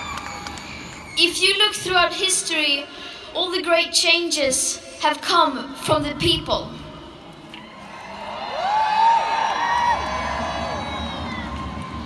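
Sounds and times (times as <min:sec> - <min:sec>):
crowd cheering: 0:00.0 - 0:01.3, 0:07.5 - 0:12.0.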